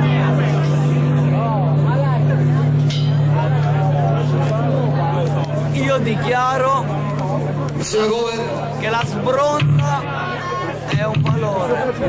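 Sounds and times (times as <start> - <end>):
band playing low drone note: 0.0 - 11.9.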